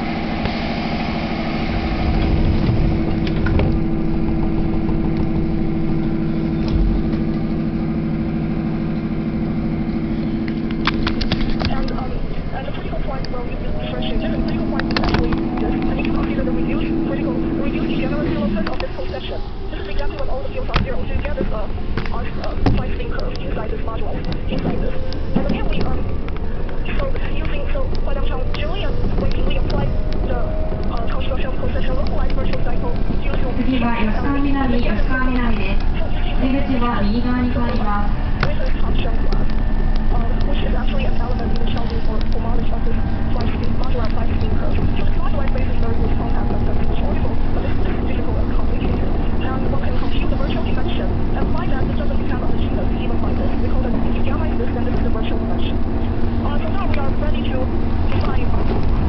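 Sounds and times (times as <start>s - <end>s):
faint passengers talking: 0.0s - 59.0s
people's voices: 0.0s - 59.0s
thin steady whine: 0.0s - 59.0s
train rumbling: 0.0s - 59.0s
recorded woman's announcement: 11.4s - 58.8s.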